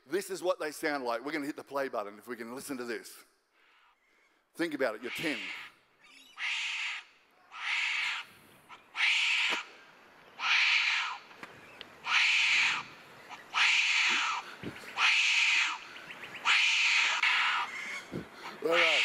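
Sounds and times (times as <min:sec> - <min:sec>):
wombat shrieks over speakers: 0:05.0 - 0:08.3, 0:08.9 - 0:09.7, 0:10.4 - 0:11.2, 0:12.0 - 0:12.9, 0:13.5 - 0:14.4, 0:15.0 - 0:15.8, 0:16.4 - 0:19.0.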